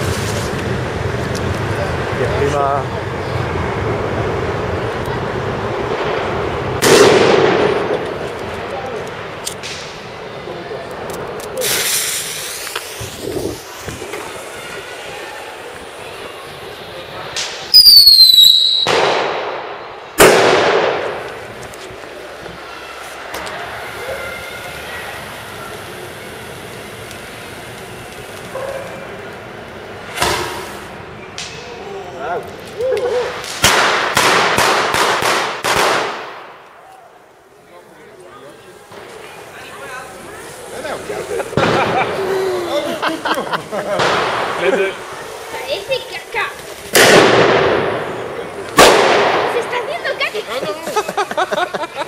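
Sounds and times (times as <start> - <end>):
firecrackers banging: 0.0 - 37.6, 38.2 - 52.0
whistling firework: 11.6 - 21.0.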